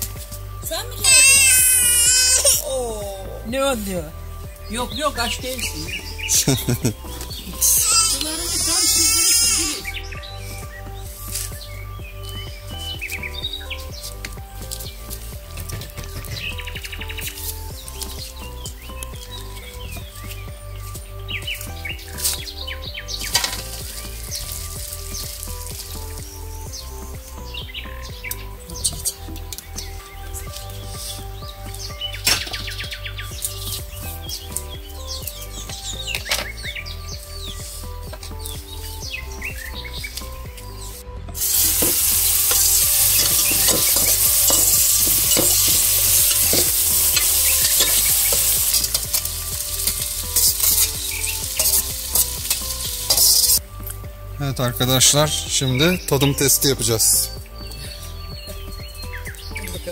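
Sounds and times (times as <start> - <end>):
soft background music: 0.0 - 59.9
vegetables sizzling in a pan: 41.4 - 53.6.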